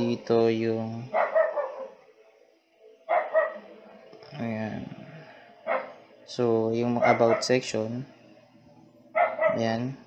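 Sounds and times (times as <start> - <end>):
dog barks: 1.1 - 2.0, 3.1 - 3.6, 5.7 - 6.0, 7.0 - 7.6, 9.2 - 9.6.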